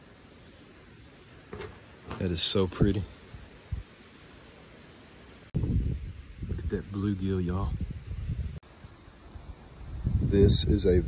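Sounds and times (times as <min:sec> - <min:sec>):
wind rumble on microphone: 0:05.6 - 0:08.6, 0:09.4 - 0:11.0.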